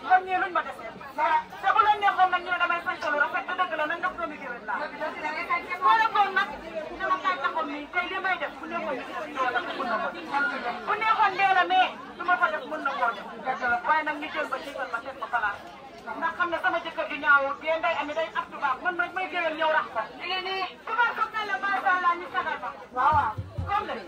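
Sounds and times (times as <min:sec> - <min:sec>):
people talking over one another: 0:00.0 - 0:24.0.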